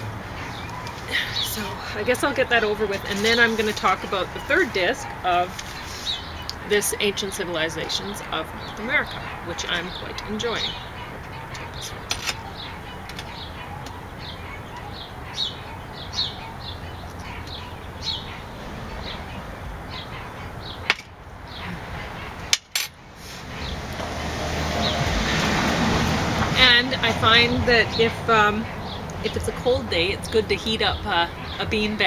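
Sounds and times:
small birds chirping: 0.0s - 22.5s, 26.5s - 32.0s
broad rushing noise: 8.0s - 29.7s.

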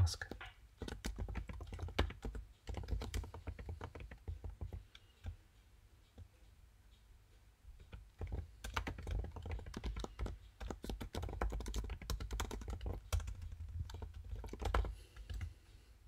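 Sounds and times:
computer keyboard typing: 0.2s - 5.4s, 7.8s - 15.5s.

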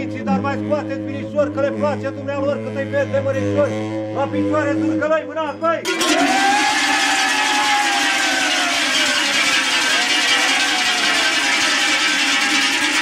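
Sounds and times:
cow bells jangling: 5.9s - 13.0s
long falling tone: 5.9s - 13.0s.

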